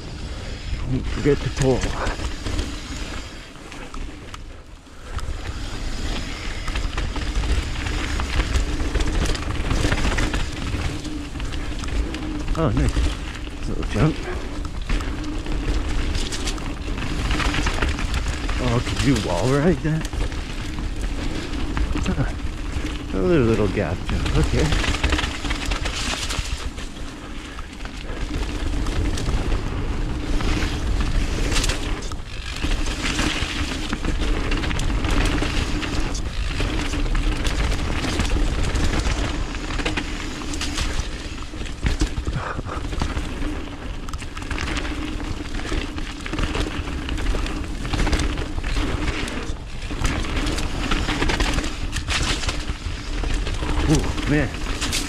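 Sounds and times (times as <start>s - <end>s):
bike tyre noise on dirt: 0.0s - 55.0s
bike rattles and knocks: 1.1s - 55.0s.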